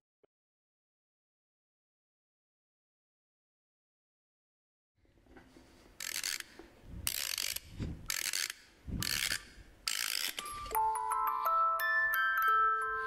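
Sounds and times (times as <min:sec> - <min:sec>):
chiming glockenspiel music: 0:10.4 - 0:13.0.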